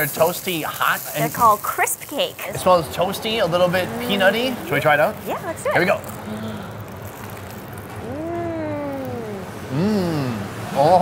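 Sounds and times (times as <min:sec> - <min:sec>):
steady background noise: 0:00.0 - 0:11.0
person humming mmm: 0:07.8 - 0:10.6.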